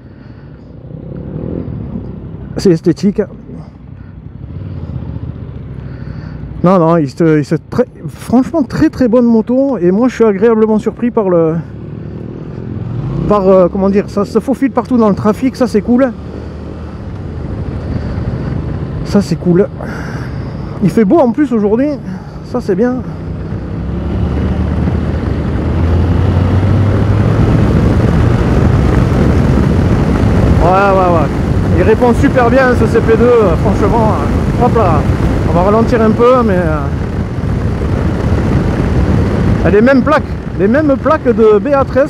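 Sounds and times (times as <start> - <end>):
road noise: 0.0 - 42.0
motorcycle engine accelerating: 0.3 - 2.5, 3.4 - 6.6, 10.7 - 42.0
wind noise: 16.2 - 22.4, 23.0 - 42.0.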